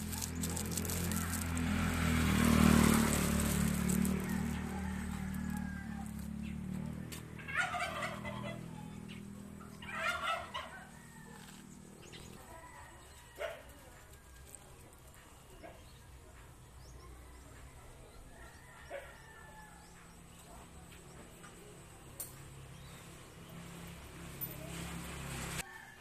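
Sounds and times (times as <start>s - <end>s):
turkey gobbling: 7.4s - 8.9s, 9.8s - 10.9s.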